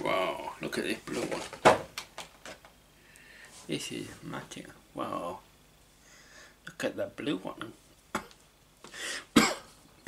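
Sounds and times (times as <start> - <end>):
intake of breath: 3.0 - 3.6, 6.0 - 6.6, 8.9 - 9.3
man coughing: 9.3 - 9.7.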